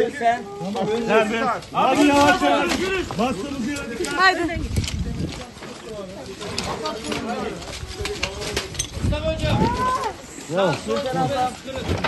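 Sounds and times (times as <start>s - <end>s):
people calling out and talking: 0.0s - 12.0s
knocks and rustling from handling: 10.7s - 12.0s.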